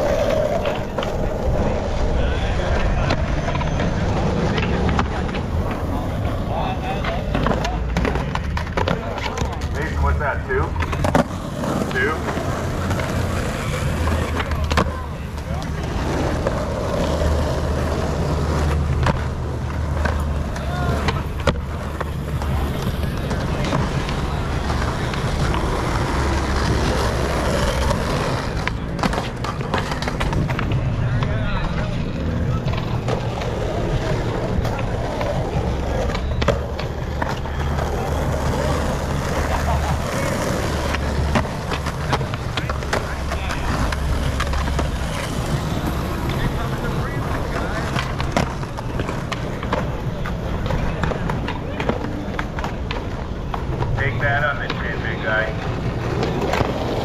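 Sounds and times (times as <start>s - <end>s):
skateboard clacks: 0.0s - 57.0s
skateboard wheels rolling on asphalt: 0.0s - 57.0s.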